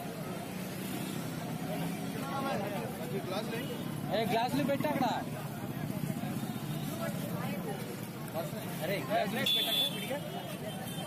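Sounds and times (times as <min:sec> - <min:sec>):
people talking: 0:01.4 - 0:11.0.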